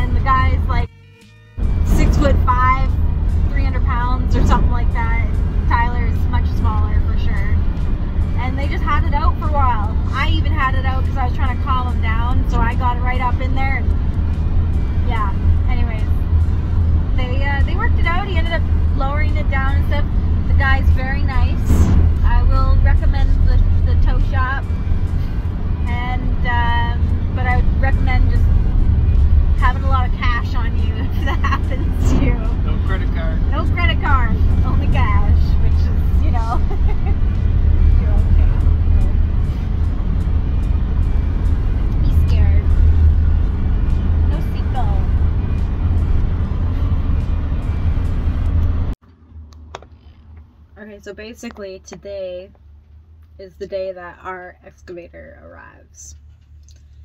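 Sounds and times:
voices: 0.0 - 0.9, 1.9 - 7.6, 8.4 - 14.0, 15.0 - 16.3, 17.1 - 24.7, 25.8 - 28.7, 29.5 - 39.5, 41.8 - 42.8, 44.2 - 45.3, 50.8 - 52.6, 53.4 - 56.2
music: 0.0 - 48.9
truck engine and road rumble: 0.0 - 57.0.

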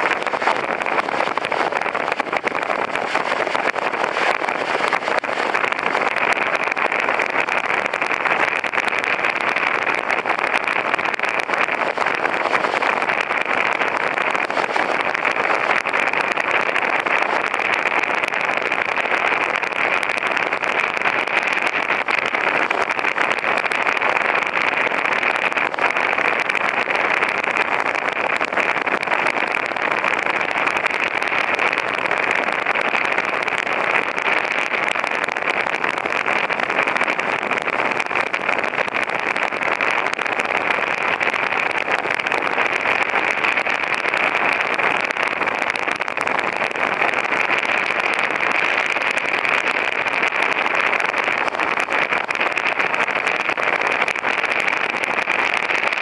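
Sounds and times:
wind: 0.0 - 56.0.

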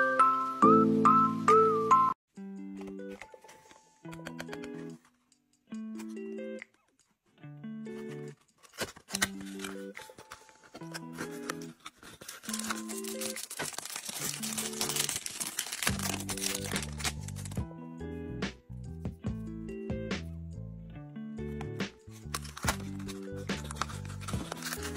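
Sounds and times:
background music: 0.0 - 24.9
cardboard box crinkling and tearing: 8.6 - 17.6, 22.1 - 24.9
foil wrapper crinkling: 8.6 - 17.6, 22.2 - 24.9.

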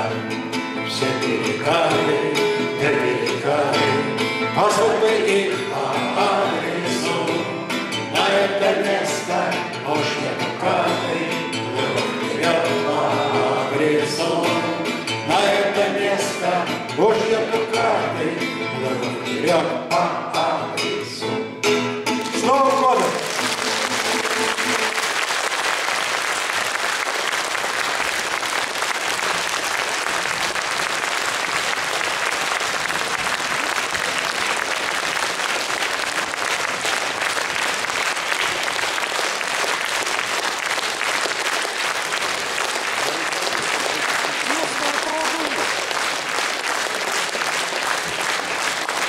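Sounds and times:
audience applauding: 22.2 - 49.0.

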